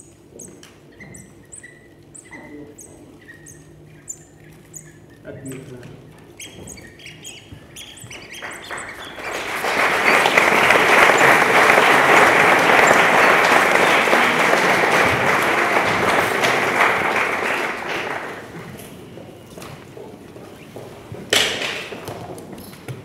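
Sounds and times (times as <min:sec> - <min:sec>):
audience applauding: 0:07.8 - 0:18.9.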